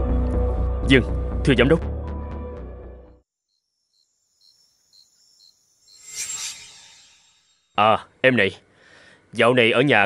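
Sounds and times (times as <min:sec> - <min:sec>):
crickets chirping: 0:03.4 - 0:07.7.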